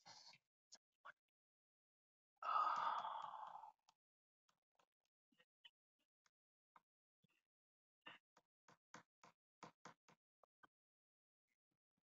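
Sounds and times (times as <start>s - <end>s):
person sighing: 2.4s - 3.7s.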